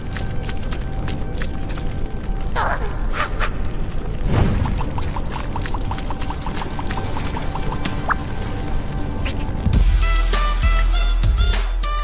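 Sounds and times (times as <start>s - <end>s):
low hum: 3.5s - 9.8s.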